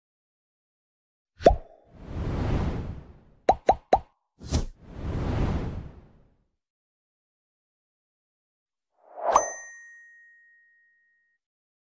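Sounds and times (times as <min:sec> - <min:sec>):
notification bell ding: 0:09.3 - 0:11.4.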